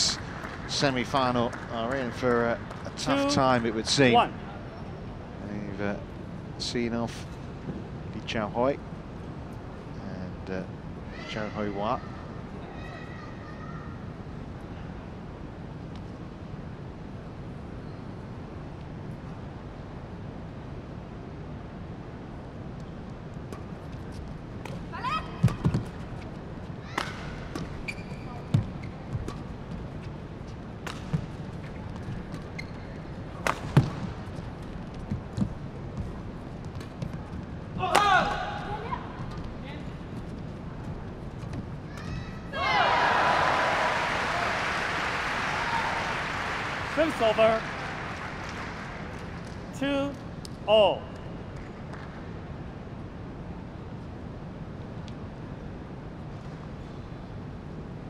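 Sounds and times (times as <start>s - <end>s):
hall background noise: 0.0s - 58.0s
racket striking shuttlecock: 37.9s - 38.4s
crowd cheering and applauding: 42.6s - 49.4s.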